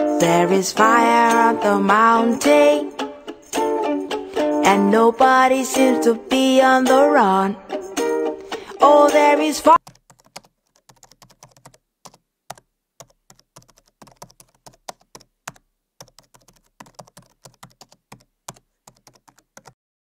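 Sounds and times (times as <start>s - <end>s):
computer keyboard typing: 9.8s - 19.8s.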